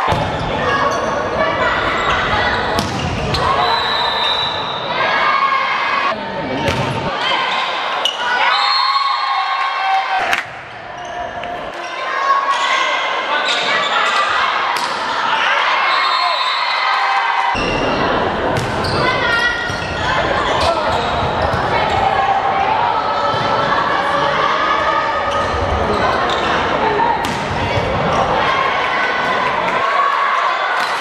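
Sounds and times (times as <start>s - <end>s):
volleyball being hit: 6.7s - 7.0s.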